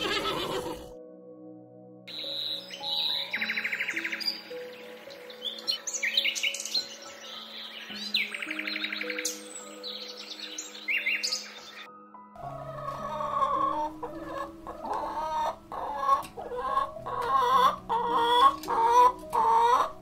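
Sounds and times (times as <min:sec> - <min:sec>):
held background music notes: 0:00.0 - 0:20.0
high bird chirps: 0:02.1 - 0:11.9
hens clucking: 0:12.4 - 0:20.0.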